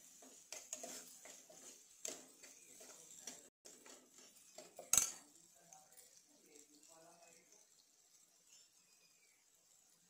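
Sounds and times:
spoon scraping in pan: 0:00.0 - 0:10.0
spoon clinking against pan: 0:00.6 - 0:05.4.

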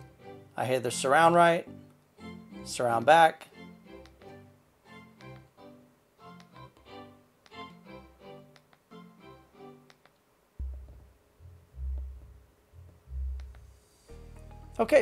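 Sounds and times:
music with short repeating notes: 0:00.0 - 0:10.0, 0:10.6 - 0:15.0
deep subwoofer pulses: 0:10.6 - 0:13.8.

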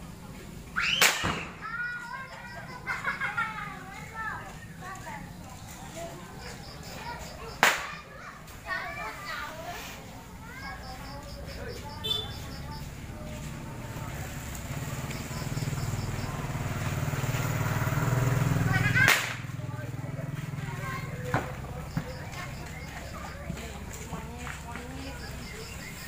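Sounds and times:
firecracker sharp cracks: 0:00.8 - 0:01.8, 0:07.5 - 0:08.1, 0:18.8 - 0:19.6
firecracker bang: 0:00.9 - 0:01.8, 0:07.6 - 0:08.0, 0:18.9 - 0:19.5.

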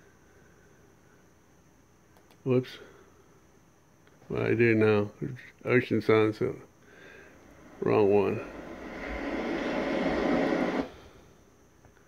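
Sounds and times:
ocean surf through speakers: 0:07.4 - 0:11.0.

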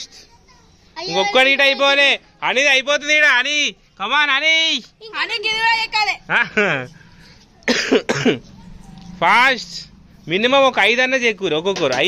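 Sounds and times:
cough-like vocal burst: 0:07.7 - 0:08.5.

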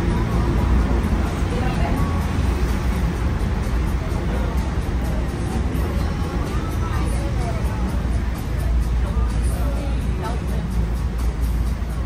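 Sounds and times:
boat engine rumble: 0:00.0 - 0:12.0.

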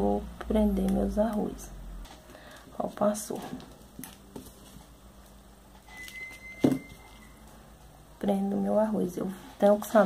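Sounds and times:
faint thin high tone: 0:05.8 - 0:07.5.

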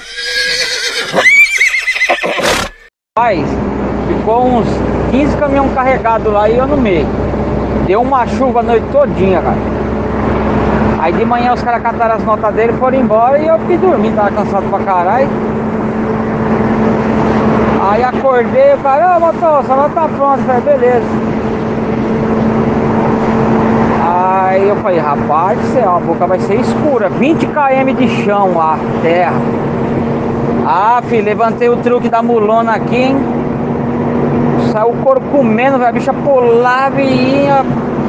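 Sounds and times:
horse whinny: 0:00.0 - 0:02.9
road noise: 0:00.0 - 0:38.0
man talking: 0:03.2 - 0:07.1, 0:07.9 - 0:09.6, 0:11.0 - 0:15.3, 0:17.8 - 0:21.1, 0:24.0 - 0:29.4, 0:30.7 - 0:33.2, 0:34.6 - 0:37.7
vehicle engine drone: 0:03.2 - 0:38.0.

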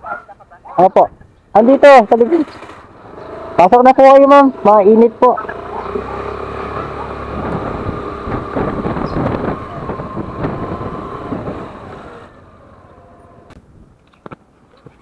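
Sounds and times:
motorcycle engine running: 0:01.7 - 0:13.6
wind noise on microphone: 0:07.2 - 0:12.3, 0:13.6 - 0:15.0.

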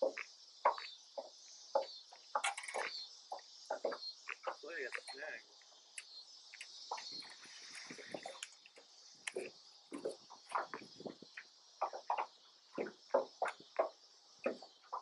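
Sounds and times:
high-pitched insect chorus: 0:00.0 - 0:15.0.

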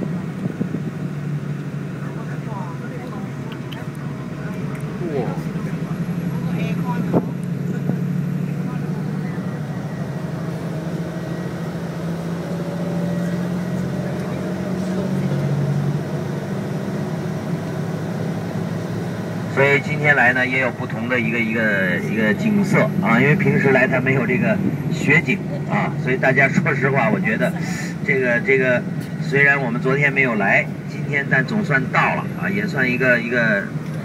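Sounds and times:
coach engine drone: 0:00.0 - 0:34.0
road noise: 0:00.0 - 0:34.0.

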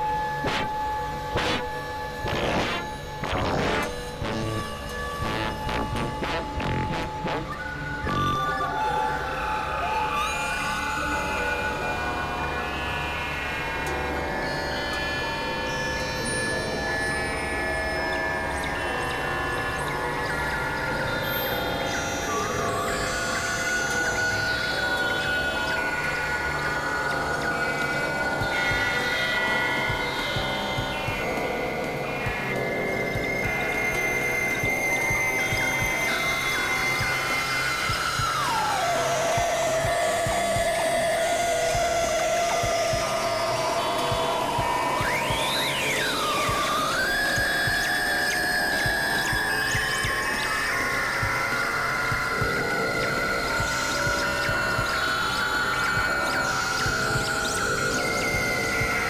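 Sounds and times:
experimental electronic music: 0:00.0 - 0:10.3, 0:18.6 - 0:59.0.

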